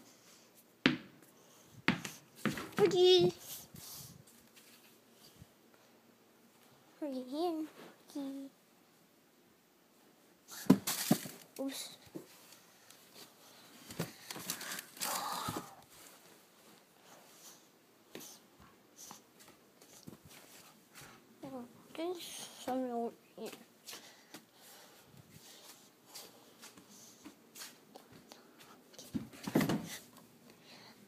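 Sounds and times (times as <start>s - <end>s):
ball bouncing on wooden floor: 0.9s - 1.2s, 1.9s - 3.0s
rummaging rustling and bumping: 10.7s - 11.4s.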